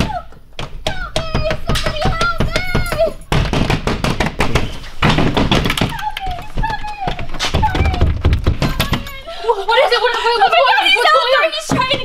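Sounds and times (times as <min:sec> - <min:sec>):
rapid thunks and knocks: 0:00.0 - 0:09.2, 0:11.6 - 0:12.0.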